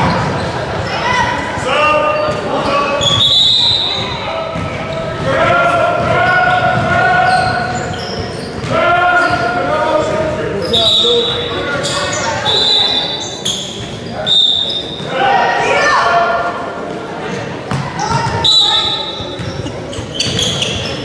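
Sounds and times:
voices echoing in gym: 0.0 - 21.0
shoe squeaks: 2.0 - 4.2, 6.2 - 9.6, 10.6 - 15.1, 18.0 - 21.0.

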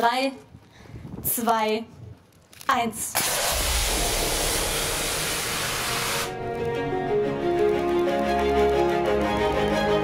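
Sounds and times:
loud rushing hiss: 3.1 - 6.4
music: 3.9 - 10.0.

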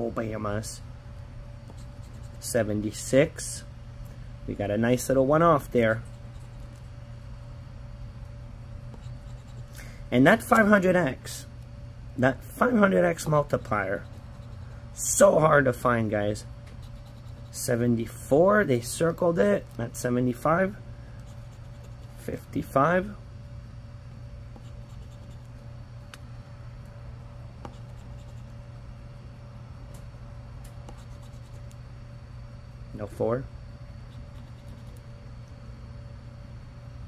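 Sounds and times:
steady low hum: 0.0 - 37.0
scratching lottery ticket: 1.6 - 3.5, 5.7 - 7.0, 8.8 - 11.4, 12.6 - 15.4, 16.6 - 20.5, 21.2 - 23.0, 24.5 - 25.7, 27.6 - 28.6, 30.8 - 31.8, 34.1 - 35.1
chip scraping scratch-off ticket: 12.6 - 15.1, 16.7 - 17.8, 21.2 - 22.4, 24.5 - 25.6, 27.6 - 28.6, 30.8 - 31.8, 34.2 - 35.0.

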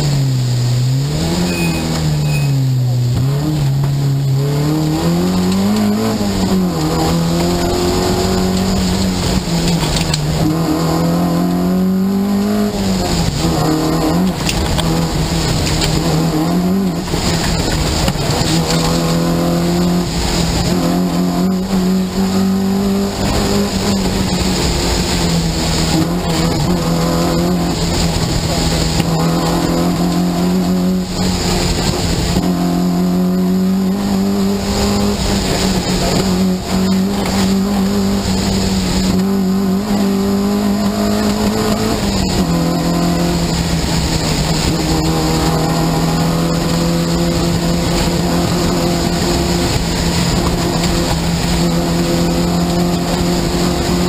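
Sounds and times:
car engine from inside cabin: 0.0 - 54.0.

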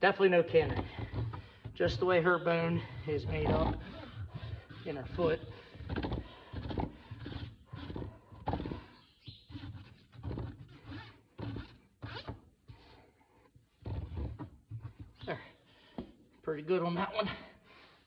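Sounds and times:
rasp scraping a hoof: 0.3 - 15.4.

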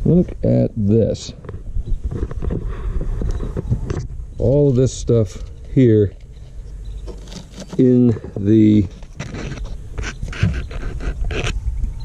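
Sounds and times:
wind buffeting microphone: 1.3 - 7.0.

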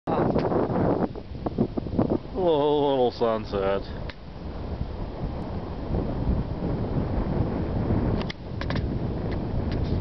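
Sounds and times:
wind buffeting microphone: 0.1 - 10.0.

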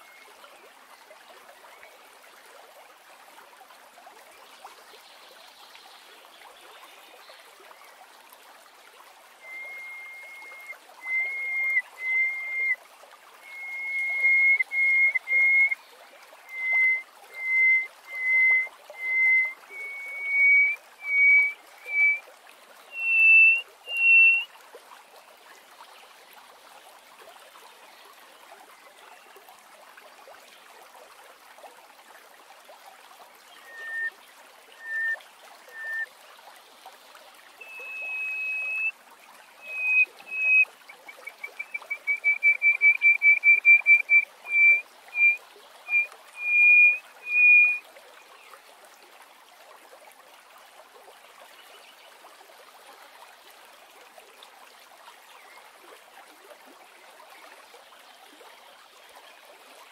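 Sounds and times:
lark singing piping whistles: 9.4 - 12.8, 13.4 - 15.8, 16.5 - 22.2, 22.9 - 24.5, 33.6 - 34.1, 34.8 - 36.1, 37.6 - 38.9, 39.6 - 47.8.

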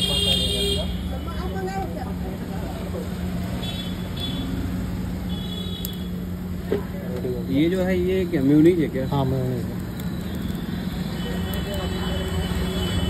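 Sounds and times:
traffic hum: 0.0 - 13.0.

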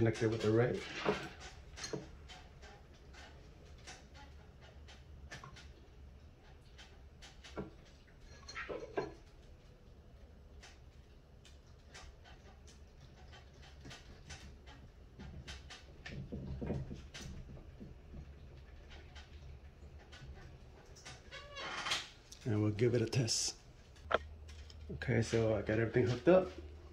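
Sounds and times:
wires and wire nuts twisting: 23.9 - 26.7.

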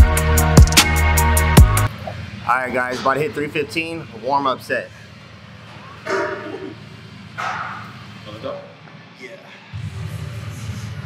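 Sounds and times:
dog barking: 6.1 - 6.6.

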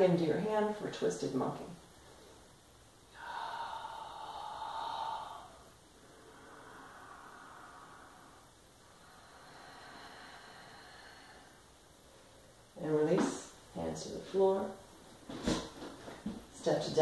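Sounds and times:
woman breathing slowly: 3.1 - 12.8.

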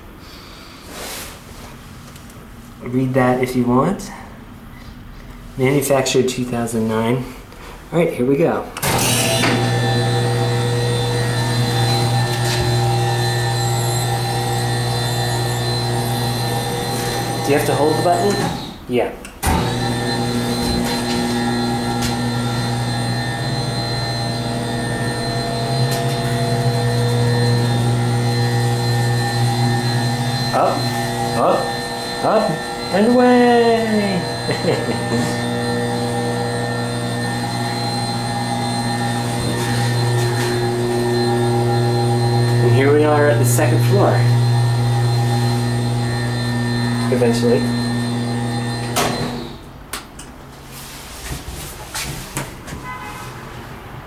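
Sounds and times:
electric lift motor humming: 8.8 - 18.8, 19.4 - 49.8
faint whining tones: 19.6 - 49.6.

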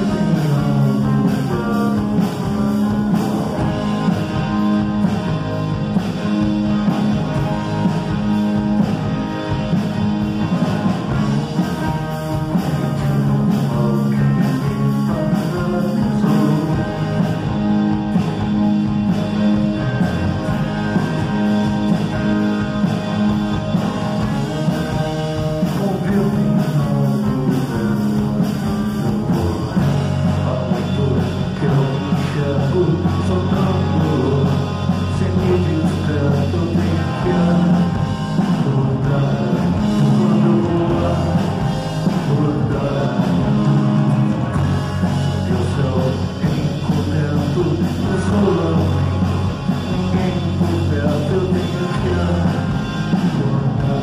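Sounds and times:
drum kit beat: 0.0 - 54.0
electric guitars: 0.0 - 54.0.

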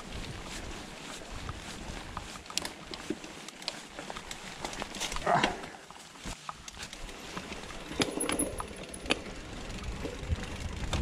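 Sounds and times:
mountain bike rattling on trail: 0.0 - 11.0.

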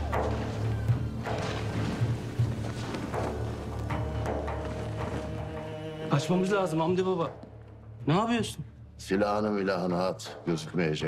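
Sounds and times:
tense dramatic score: 0.0 - 11.0.

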